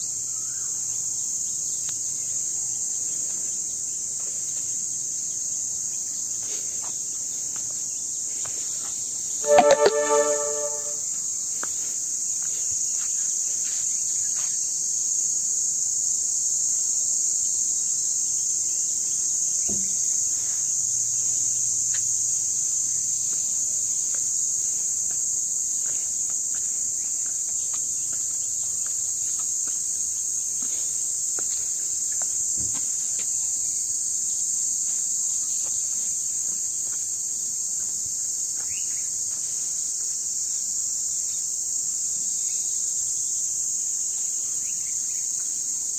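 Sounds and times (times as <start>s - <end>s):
high-pitched insect chorus: 0.0s - 45.9s.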